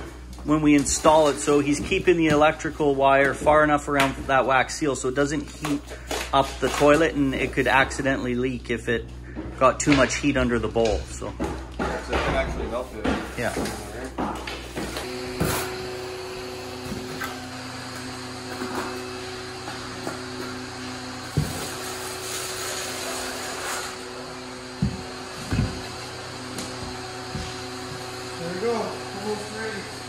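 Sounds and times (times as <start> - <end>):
steady hum: 0.0 - 30.0.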